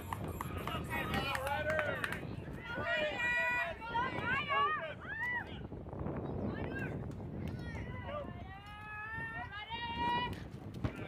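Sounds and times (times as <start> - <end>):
outdoor background noise: 0.0 - 11.0
young voices shouting: 2.6 - 5.6.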